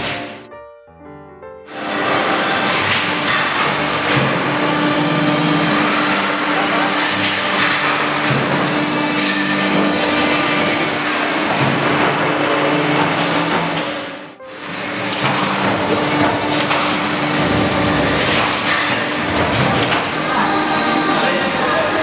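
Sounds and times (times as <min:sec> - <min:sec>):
workshop noise: 0:00.0 - 0:00.5, 0:01.7 - 0:22.0
steady machine hum: 0:01.7 - 0:22.0.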